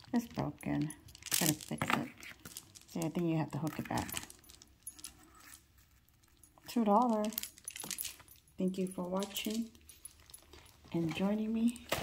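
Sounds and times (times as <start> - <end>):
necklace beads clicking: 0.0 - 11.9.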